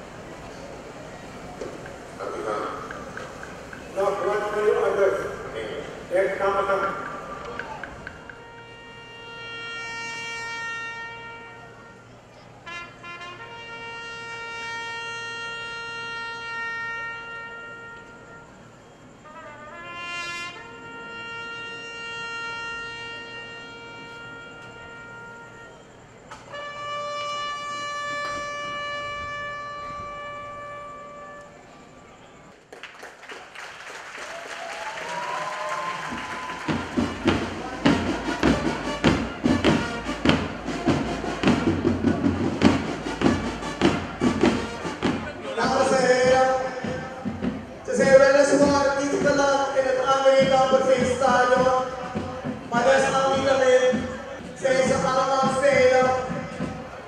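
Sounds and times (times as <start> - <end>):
soldiers marching in step: 0.0 - 9.0, 32.5 - 57.0
crowd noise: 0.0 - 57.0
trumpet holding long note: 3.9 - 31.8, 34.6 - 57.0.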